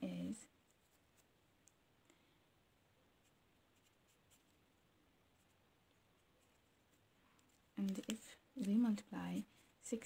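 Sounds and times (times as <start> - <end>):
pen scratching on paper: 3.2 - 4.6.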